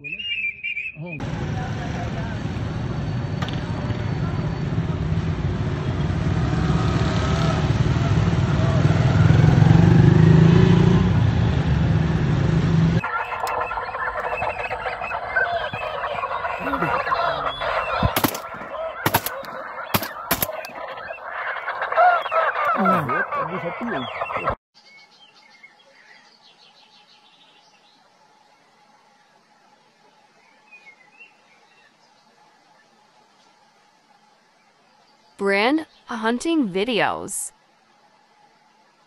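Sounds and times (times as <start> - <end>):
geese honking in flight: 13.0 - 24.6
sharp clicks: 18.1 - 20.8.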